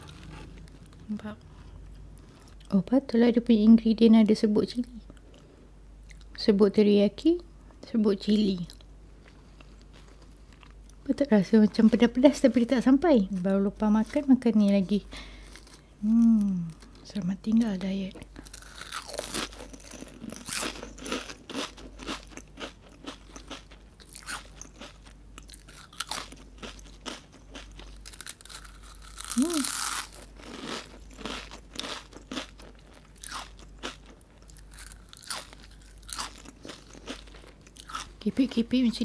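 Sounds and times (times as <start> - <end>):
crunching crispy chips: 18.4 - 38.2.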